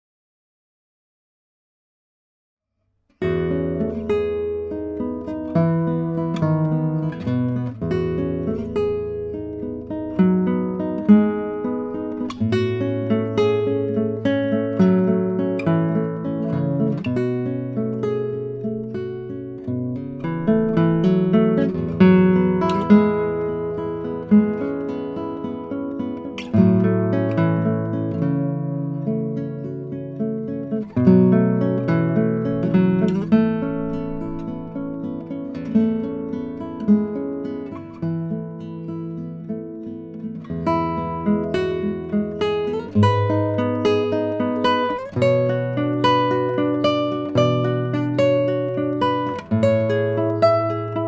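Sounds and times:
classical guitar fingerpicking: 3.0s - 51.0s.

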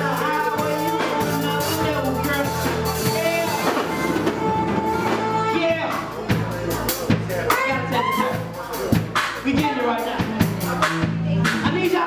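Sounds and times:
drum kit: 0.0s - 12.0s
guitar: 0.0s - 12.0s
steady bass line: 0.0s - 12.0s.

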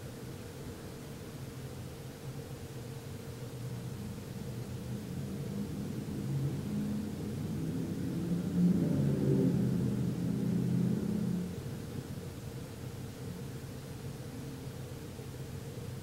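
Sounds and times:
passing vehicle engine rumble: 3.7s - 12.4s.

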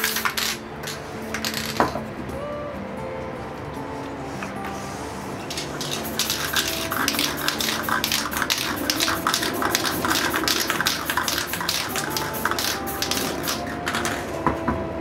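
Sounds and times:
spray can hissing bursts: 0.0s - 1.6s, 5.5s - 14.3s.

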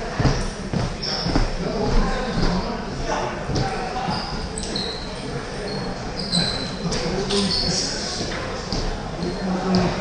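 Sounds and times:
shoes squeaking on floor: 0.2s - 2.6s, 3.5s - 10.0s.

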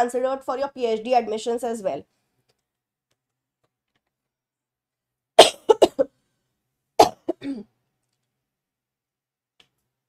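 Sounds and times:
person coughing: 5.4s - 6.1s, 7.0s - 7.8s.

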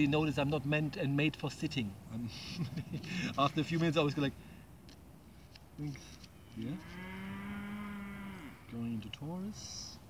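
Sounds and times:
cow mooing: 6.5s - 8.8s.

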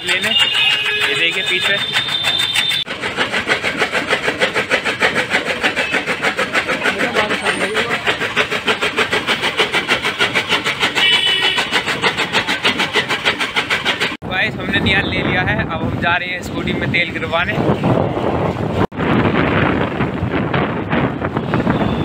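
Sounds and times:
engine-driven machine running: 0.0s - 15.1s.

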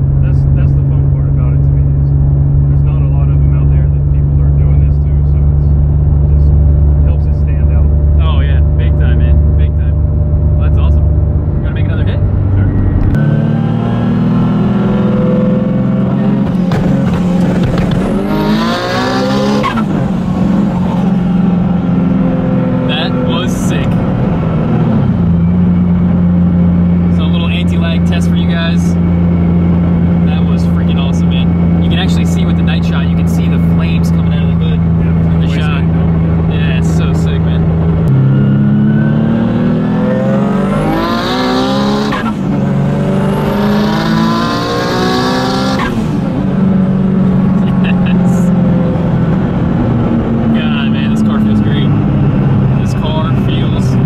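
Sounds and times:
car engine revving: 0.0s - 54.0s
exhaust pops and crackles: 16.3s - 18.3s.

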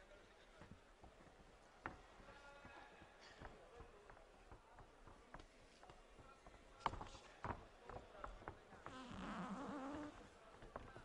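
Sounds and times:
faint arena ambience: 0.0s - 9.0s.

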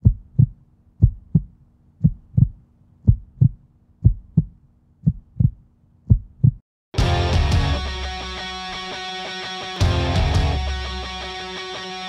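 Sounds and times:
heartbeat thumps: 0.0s - 6.6s.

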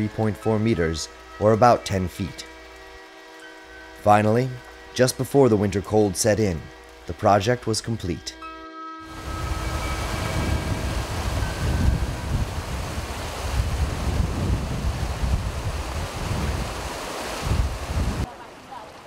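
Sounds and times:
wind buffeting microphone: 9.1s - 18.3s
water rushing through a sluice: 9.2s - 19.0s.

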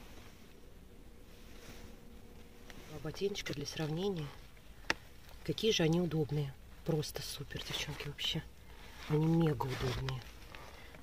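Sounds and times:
faint buzzing hum: 0.0s - 11.0s.

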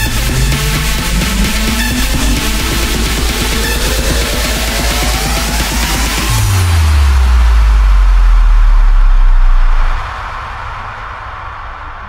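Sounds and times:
house music: 0.0s - 10.2s
deep sub-bass tone sliding down: 0.0s - 10.4s.

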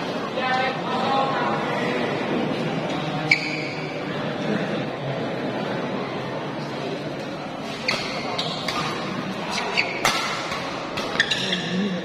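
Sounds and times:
crowd chatter: 0.0s - 12.0s
shoes squeaking on court: 3.2s - 3.9s, 7.6s - 12.0s
racket hitting shuttlecock: 7.8s - 11.5s.

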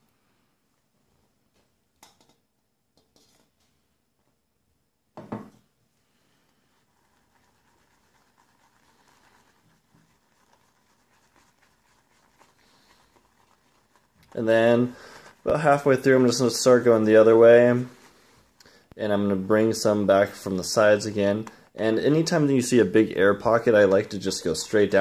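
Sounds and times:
shaving brush swishing in bowl: 6.4s - 25.0s.

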